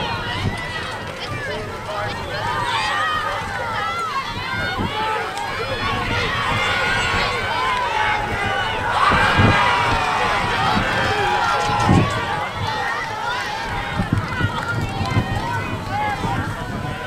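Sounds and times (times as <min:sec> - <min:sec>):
people shouting: 0:00.0 - 0:17.0.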